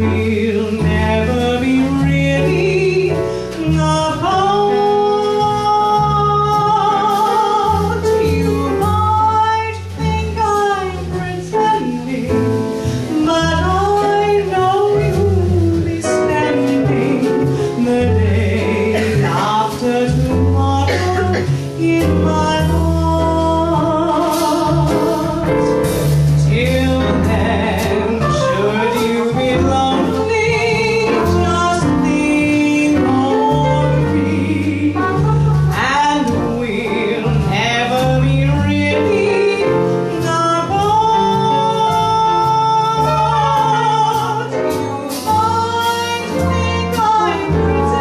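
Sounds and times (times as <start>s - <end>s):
double bass held notes: 0.0s - 48.0s
small jazz band playing: 0.0s - 48.0s.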